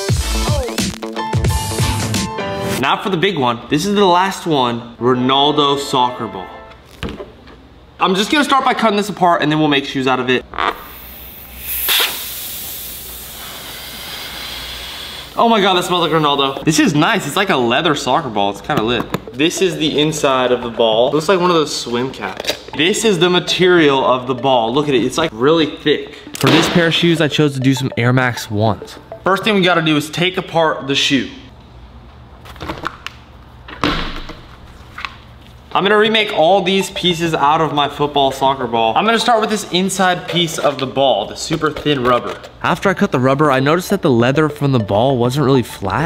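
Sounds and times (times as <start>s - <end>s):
air bursting from punctured ball: 10.7s - 15.5s
ball deflating with hiss: 10.8s - 16.4s.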